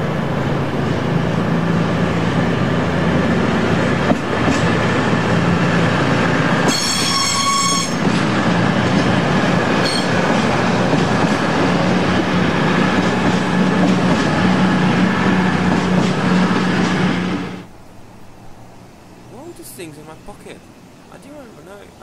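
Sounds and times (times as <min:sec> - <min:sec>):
train wheels rumbling: 0:00.0 - 0:22.0
high ringing tone: 0:06.7 - 0:08.0, 0:09.8 - 0:10.2.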